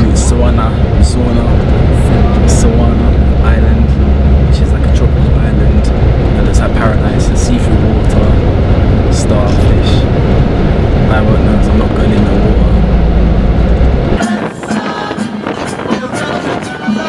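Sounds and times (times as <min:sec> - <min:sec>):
voices: 0:00.0 - 0:10.2, 0:11.0 - 0:13.0
bus engine and road drone: 0:00.0 - 0:17.0.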